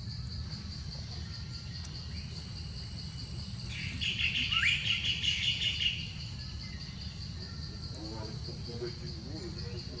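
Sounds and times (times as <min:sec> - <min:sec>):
pulsing high insect chirp: 0:00.0 - 0:10.0
bird trilling call: 0:03.7 - 0:07.7.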